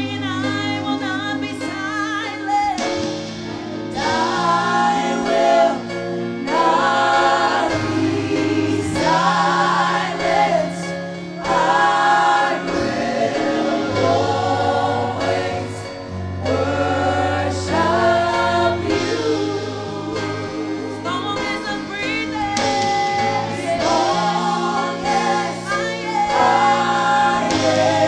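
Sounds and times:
band with held bass notes: 0.0s - 28.0s
choir singing worship song: 0.0s - 28.0s.

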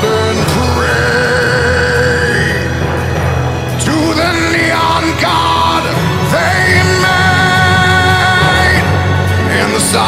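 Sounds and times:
low accompaniment: 0.0s - 10.0s
man singing a long held note: 0.0s - 10.0s
orchestral strings: 0.0s - 10.0s.

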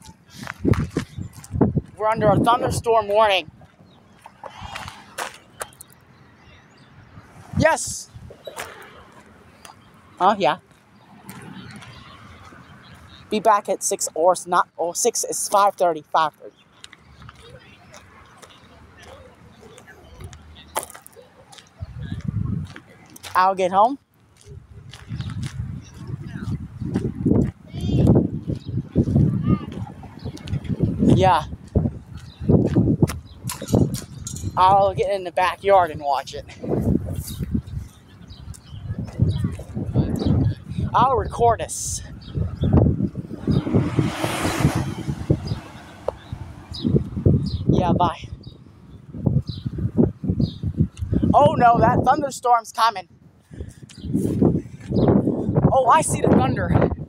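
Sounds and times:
phone microphone handling rumble: 0.4s - 2.8s
low rumbling: 36.5s - 51.4s.

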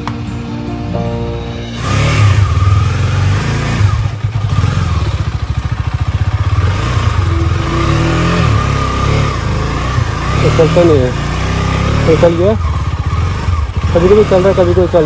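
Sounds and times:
motorcycle engine running: 1.4s - 15.0s.

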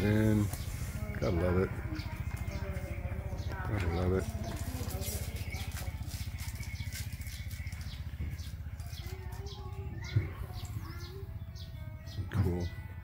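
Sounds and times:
birds chirping: 0.0s - 13.0s
low throbbing motor hum: 0.0s - 13.0s.

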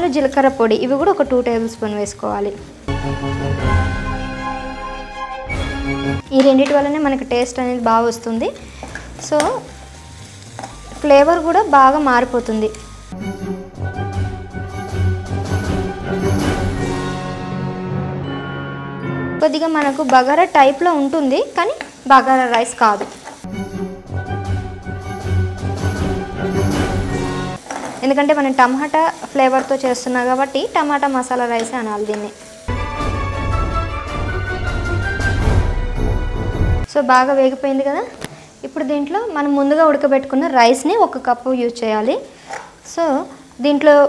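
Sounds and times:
spices sizzling in a pan: 0.0s - 3.2s, 6.2s - 13.4s, 19.4s - 23.6s, 24.5s - 33.7s, 36.8s - 44.0s
background music: 0.0s - 43.2s.

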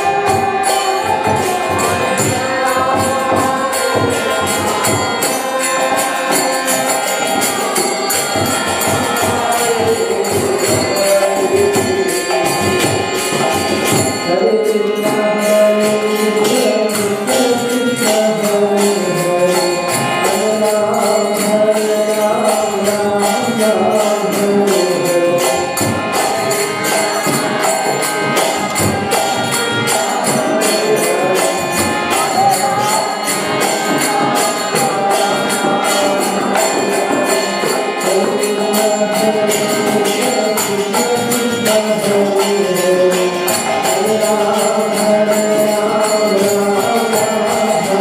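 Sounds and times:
hand cymbals striking: 0.0s - 48.0s
harmonium chords: 0.0s - 48.0s
man chanting: 14.2s - 25.9s, 30.0s - 48.0s.

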